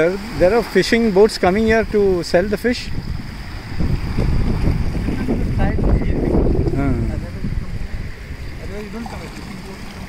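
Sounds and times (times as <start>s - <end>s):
small waves washing on sand: 0.0s - 10.0s
wind on microphone: 0.0s - 10.0s.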